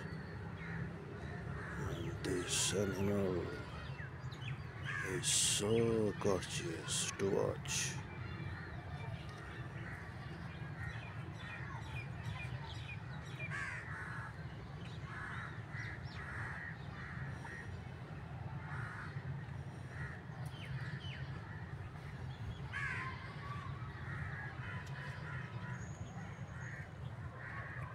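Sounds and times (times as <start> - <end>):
birds calling harshly: 0.0 - 8.8, 12.7 - 17.7.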